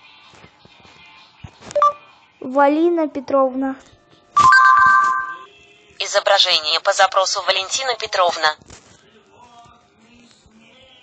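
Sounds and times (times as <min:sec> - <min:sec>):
electronic chime: 0:04.4 - 0:05.5.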